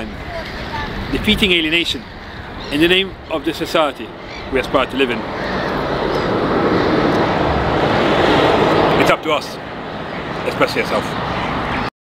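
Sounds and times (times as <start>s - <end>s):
bus passing: 0.0s - 11.9s.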